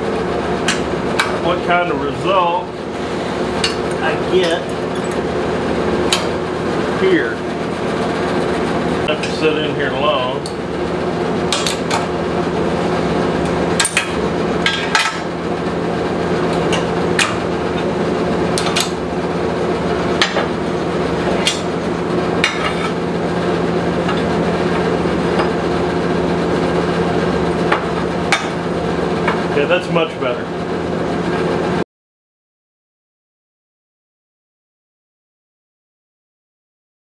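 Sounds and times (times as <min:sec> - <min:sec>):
machine hum: 0:00.0 - 0:31.8.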